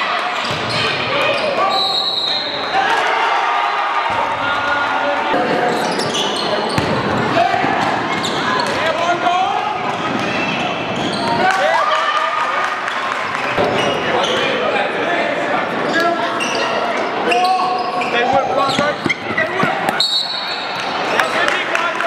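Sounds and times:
voices calling out in gym: 0.0 - 22.0.

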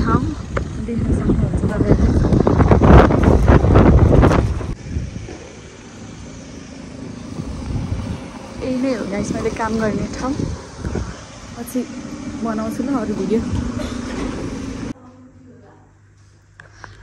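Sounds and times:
wind buffeting microphone: 0.0 - 6.3, 7.0 - 15.0
quiet street background: 0.0 - 16.8.

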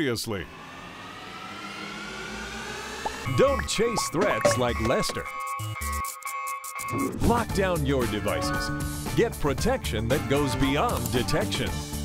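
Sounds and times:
faint rising tone: 0.2 - 5.8.

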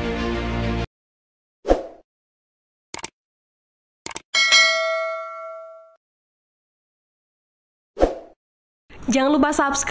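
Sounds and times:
bell-like notification ding: 4.4 - 6.0.

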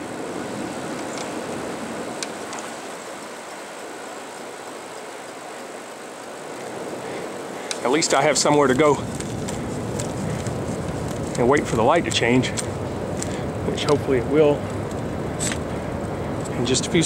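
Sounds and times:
bicycle tyres on asphalt: 0.0 - 17.0
faint clicks: 2.2 - 3.6, 7.6 - 7.9.

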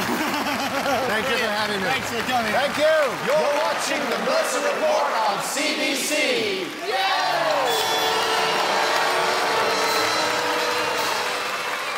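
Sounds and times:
orchestra holding a loud chord: 7.7 - 11.9.

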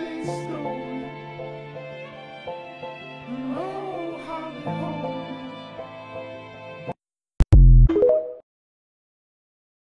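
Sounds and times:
short electronic jingle notes: 7.5 - 8.4.

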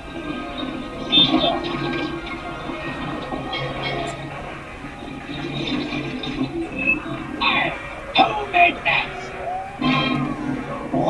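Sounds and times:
low hum: 0.0 - 11.0
television music: 0.0 - 11.0
television sound effects: 0.0 - 11.0.

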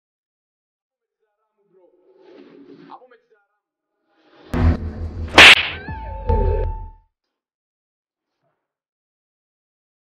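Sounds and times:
deep bass rumble: 4.6 - 5.3
whip-like slap crack: 5.3 - 5.9.

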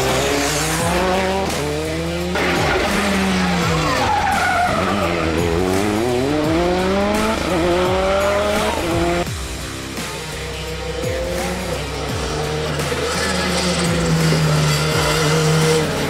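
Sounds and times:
rally car engine at high revs: 0.0 - 16.0.

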